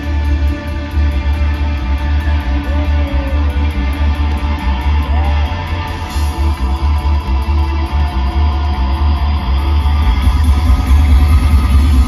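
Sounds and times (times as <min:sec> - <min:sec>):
heavy bass: 0:00.0 - 0:12.0
live rock band: 0:00.0 - 0:12.0.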